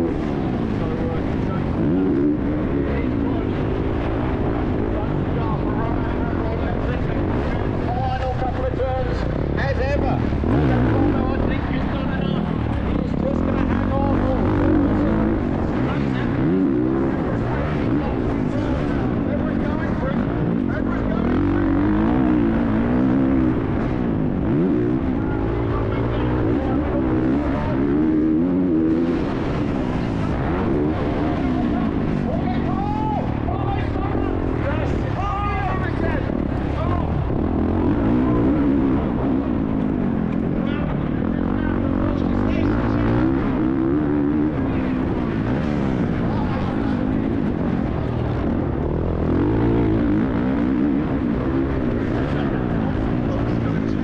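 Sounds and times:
dirt noise: 0.0s - 54.0s
motocross bike engine revving: 0.0s - 54.0s.

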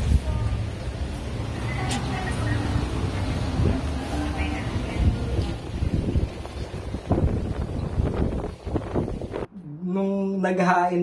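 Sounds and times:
wind buffeting microphone: 1.5s - 9.5s.

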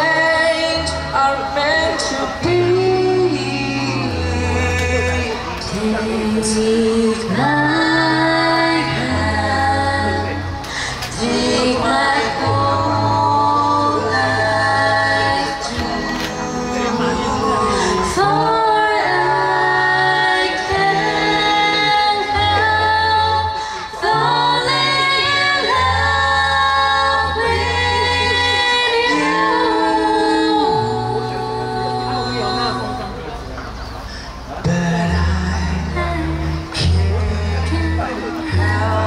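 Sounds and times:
a cappella trio singing harmony: 0.0s - 39.0s.

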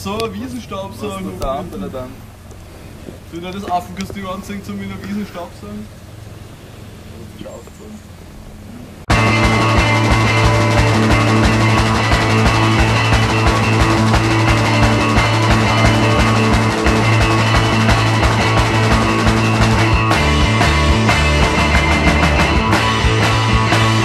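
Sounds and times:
loud rock music: 9.1s - 24.0s.

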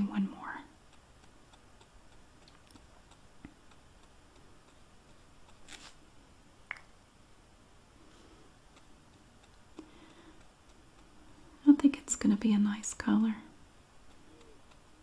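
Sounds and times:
brush ticking on paper and glass: 0.0s - 6.0s, 8.0s - 15.0s
brush scratching in bottle: 5.2s - 6.0s.

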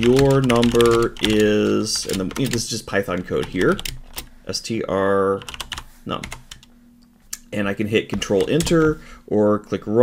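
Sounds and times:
computer keyboard typing: 0.0s - 4.3s, 5.4s - 6.7s, 8.2s - 9.0s.

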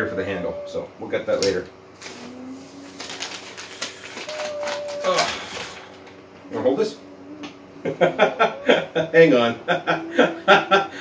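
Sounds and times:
packing wrap rustling: 1.4s - 6.0s
person humming: 2.0s - 3.4s, 4.2s - 5.8s, 6.4s - 11.0s
person saying ooh: 4.3s - 5.6s.

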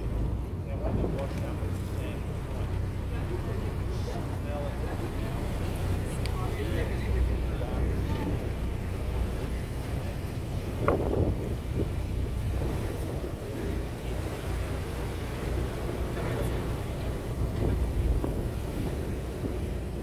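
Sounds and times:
boat engine low rumble: 0.0s - 20.0s
water wash: 0.0s - 20.0s
wind buffeting microphone: 0.0s - 20.0s.

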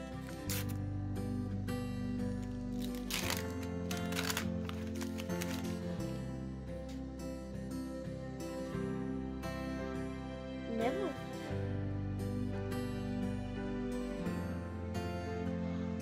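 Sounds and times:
background music: 0.0s - 16.0s
paper wrapper crinkling and tearing: 0.1s - 0.8s, 2.3s - 5.9s.

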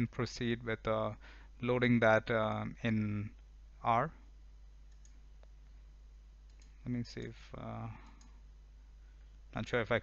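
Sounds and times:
low steady hum: 0.0s - 10.0s
computer mouse clicks: 4.9s - 5.8s, 6.4s - 7.3s, 8.0s - 8.4s.

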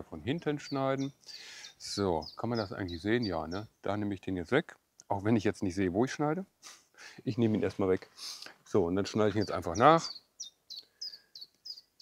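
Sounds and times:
small bird chirping: 0.5s - 3.8s, 9.1s - 12.0s.

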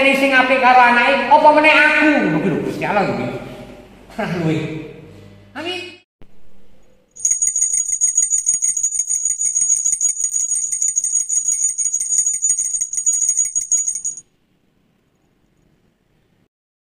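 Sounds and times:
small bells jingling: 7.2s - 14.2s.

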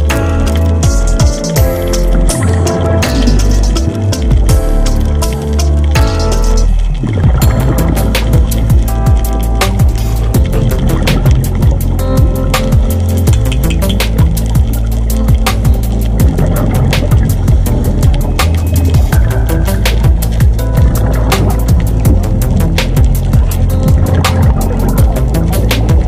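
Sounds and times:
music with fast beat and heavy bass: 0.0s - 26.0s.

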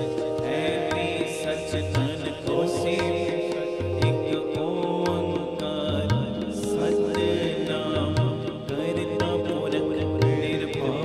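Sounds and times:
harmoniums droning melody: 0.0s - 11.0s.

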